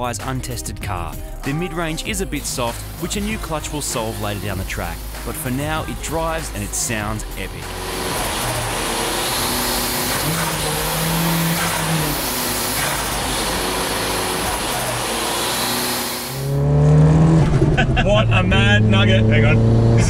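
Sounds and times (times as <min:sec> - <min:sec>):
turbocharged engine running hard: 0:01.2 - 0:20.0
engine heard from inside car: 0:07.6 - 0:20.0.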